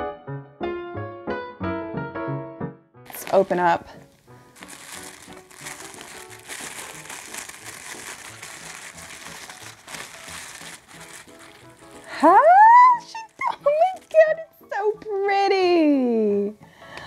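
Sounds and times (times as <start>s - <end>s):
soft background music: 0.0s - 17.0s
tissue paper rustling: 3.1s - 14.4s.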